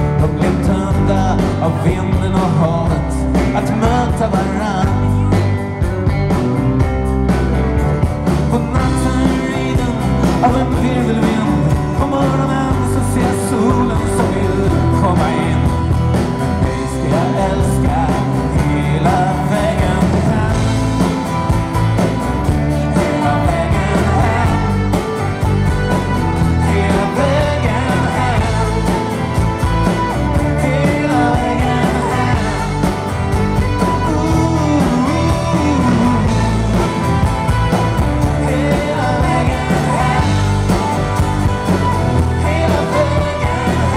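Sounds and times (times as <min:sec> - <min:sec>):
man singing: 0:00.0 - 0:05.8, 0:08.2 - 0:21.6, 0:22.4 - 0:43.9
live rock band playing: 0:00.0 - 0:43.9.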